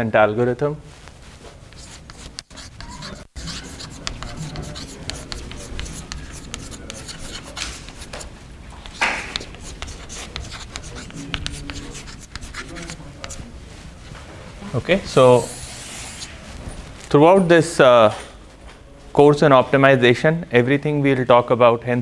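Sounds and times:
chalk scratching on blackboard: 1.7 - 13.5, 15.1 - 16.8.

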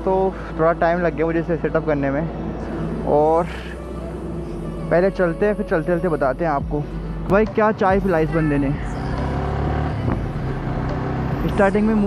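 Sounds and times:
road and wind noise: 0.0 - 12.0
motorcycle engine accelerating: 7.2 - 12.0.

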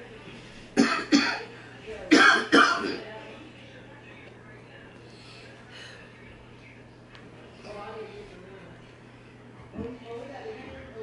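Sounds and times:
man coughing: 0.8 - 1.5, 2.1 - 3.0.

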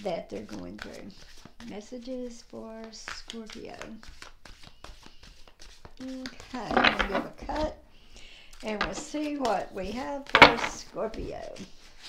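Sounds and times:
cards being shuffled by hand: 0.0 - 7.8, 8.5 - 12.0.

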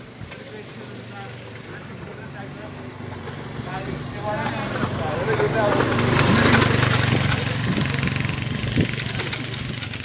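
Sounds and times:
engine running steadily: 0.0 - 10.0
faint voices talking: 0.2 - 9.8.

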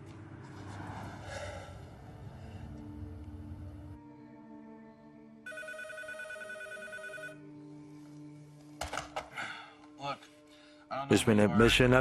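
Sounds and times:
telephone ringing: 5.5 - 7.5.

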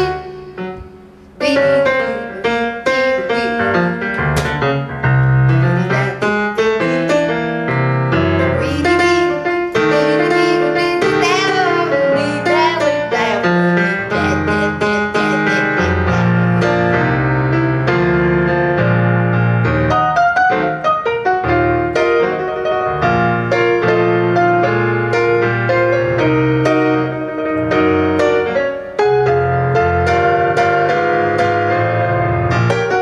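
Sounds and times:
piano jazz ballad: 0.0 - 33.0
woman's wordless vocal: 5.6 - 6.2, 10.0 - 16.6.

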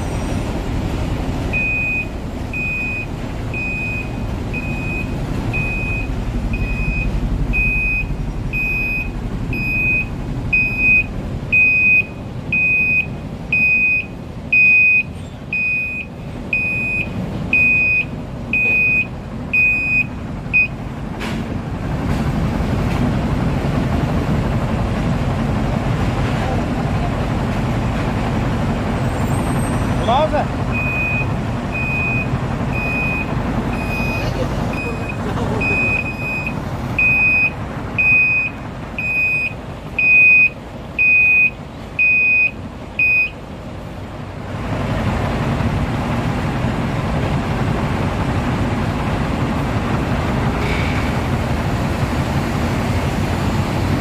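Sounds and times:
diesel machinery rumble: 0.0 - 54.0
truck reversing alarm beeps: 1.5 - 20.8, 29.0 - 43.4.

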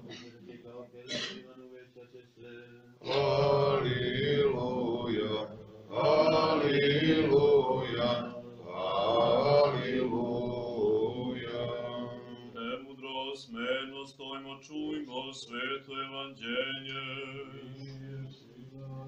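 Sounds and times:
liturgical chant: 0.0 - 19.0.

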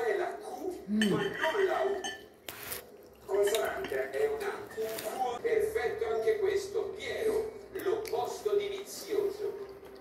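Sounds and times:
cutlery clinking on plate: 1.0 - 2.3.

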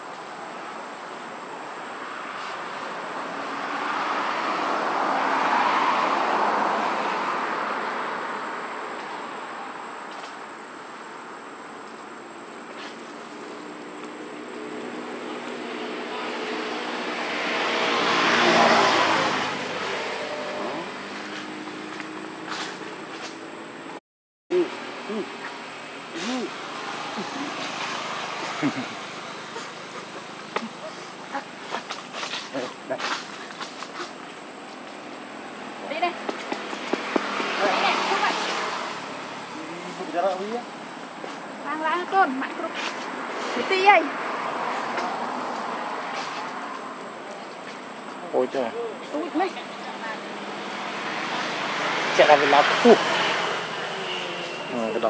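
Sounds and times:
vehicle passing: 0.0 - 10.0, 12.8 - 23.8, 24.5 - 55.0
forest background hiss: 0.0 - 55.0.

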